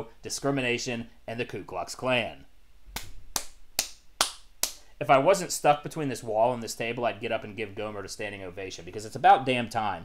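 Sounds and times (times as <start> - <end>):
person clapping slowly: 2.9 - 4.9.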